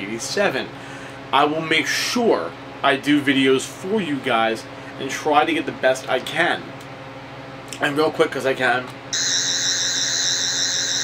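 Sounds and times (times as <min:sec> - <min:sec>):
toy warbling electronic whine: 0:09.1 - 0:11.0.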